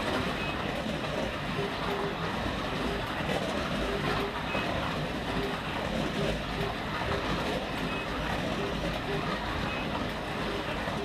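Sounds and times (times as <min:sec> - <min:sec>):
slot car rattling on rails: 0:00.0 - 0:11.0.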